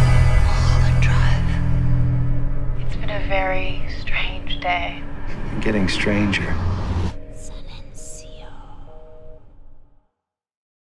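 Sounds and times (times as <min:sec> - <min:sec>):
person whispering: 0:07.4 - 0:09.1.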